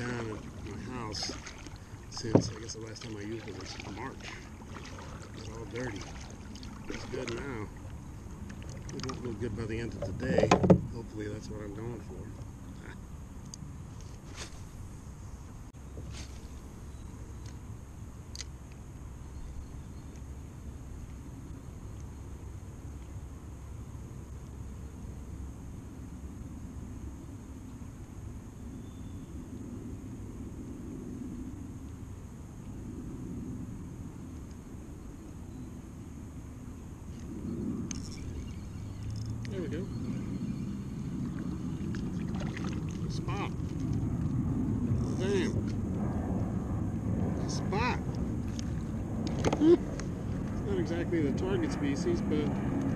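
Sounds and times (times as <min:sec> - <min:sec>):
movement noise: 0:00.0 - 0:11.5, 0:13.9 - 0:15.0
wind rumble on microphone: 0:00.0 - 0:52.9.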